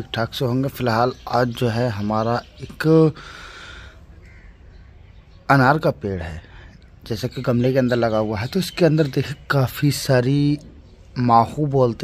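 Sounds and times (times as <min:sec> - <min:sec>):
crow cawing: 0:03.2 - 0:04.8.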